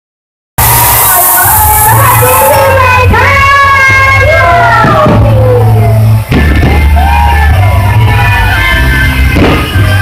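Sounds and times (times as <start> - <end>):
bright hiss: 0.6 - 3.2
crowd cheering: 0.6 - 10.0
distorted amplified live music: 0.6 - 10.0.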